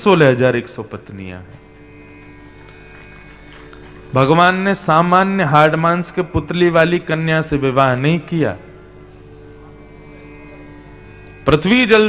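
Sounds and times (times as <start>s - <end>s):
soft background music drone: 0.0s - 12.0s.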